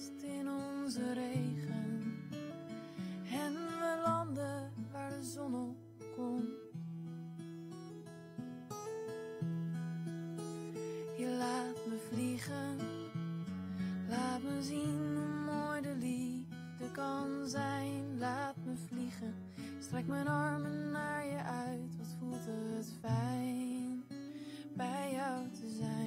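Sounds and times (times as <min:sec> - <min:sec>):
woman singing wordless notes: 0:00.0 - 0:02.1, 0:03.3 - 0:06.6, 0:11.2 - 0:13.2, 0:14.0 - 0:26.0
acoustic guitar chords: 0:00.0 - 0:26.0.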